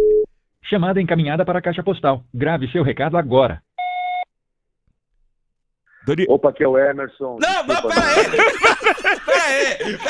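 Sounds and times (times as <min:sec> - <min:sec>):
voicemail beep: 0:03.8 - 0:04.3.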